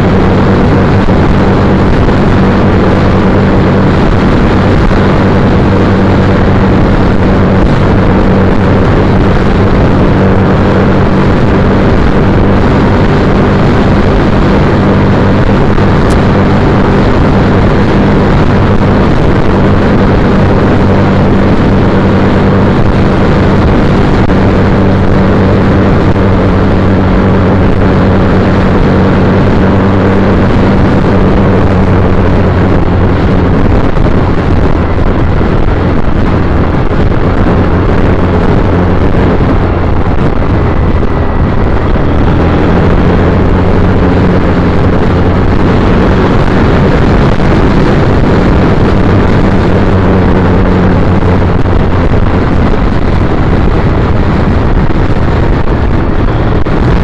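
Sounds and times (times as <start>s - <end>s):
dense rushing noise: 0.0s - 57.0s
motorcycle engine running: 0.0s - 57.0s.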